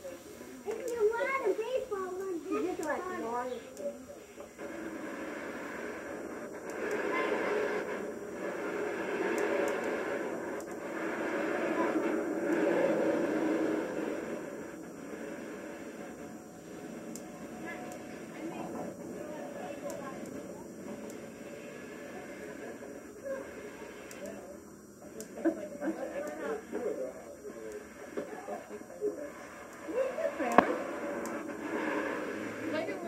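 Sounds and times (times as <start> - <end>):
people talking: 0.0 - 4.6, 11.6 - 13.2, 17.6 - 31.8, 32.5 - 33.0.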